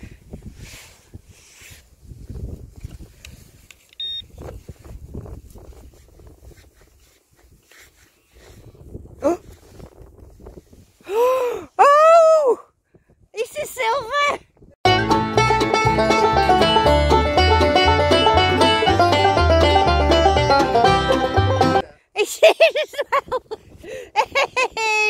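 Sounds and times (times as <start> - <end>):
wind buffeting microphone: 0.0 - 11.7, 12.7 - 14.8
gloved hands scraping soil: 0.4 - 3.9, 4.6 - 11.0
short electronic beep: 4.0 - 4.4
person exclaiming excitedly: 11.1 - 12.7.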